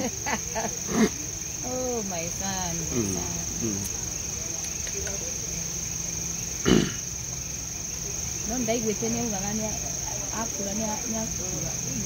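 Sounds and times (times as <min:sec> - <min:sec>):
night insects droning: 0:00.0 - 0:12.0.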